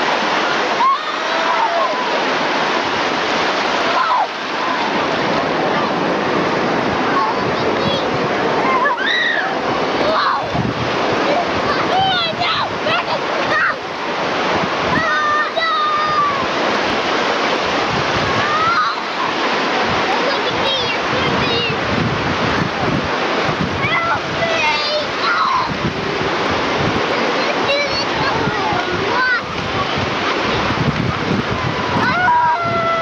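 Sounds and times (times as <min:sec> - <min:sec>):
children calling: 0:00.0 - 0:33.0
surf washing over sand: 0:00.0 - 0:33.0
wind buffeting microphone: 0:02.0 - 0:33.0.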